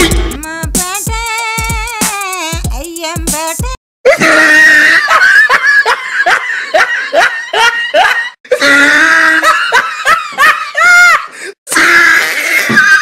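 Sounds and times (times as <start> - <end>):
shrill laughing sound effect: 4.1 - 9.8, 11.9 - 13.0.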